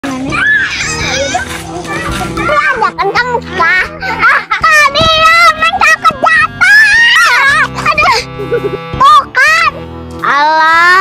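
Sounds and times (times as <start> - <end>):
background music: 0.0 - 11.0
children calling out: 0.1 - 8.3.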